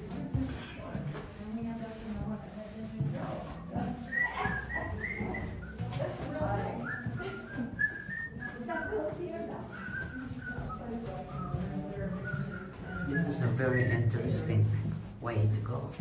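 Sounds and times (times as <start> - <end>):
person whistling a tune: 4.1 - 5.9, 6.8 - 8.9, 9.7 - 14.1.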